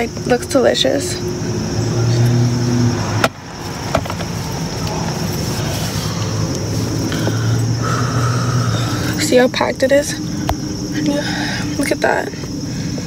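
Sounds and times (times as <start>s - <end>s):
car engine hum inside cabin: 0.0s - 13.0s.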